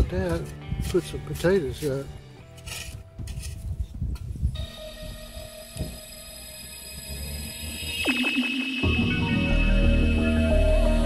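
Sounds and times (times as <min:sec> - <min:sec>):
background music: 0:00.0 - 0:03.8, 0:04.6 - 0:11.0
shovel scraping dry soil: 0:00.0 - 0:04.0.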